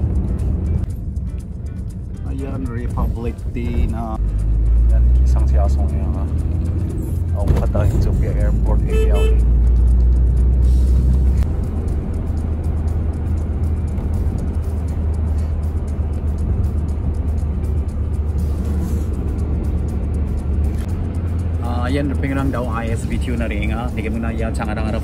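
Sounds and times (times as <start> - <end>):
car road and engine rumble: 0.0 - 25.0
music playing: 0.0 - 25.0.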